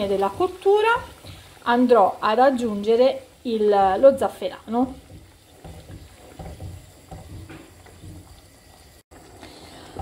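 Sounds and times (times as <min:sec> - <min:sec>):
risotto bubbling: 0:00.0 - 0:10.0
wooden spoon scraping a pan: 0:03.8 - 0:09.0.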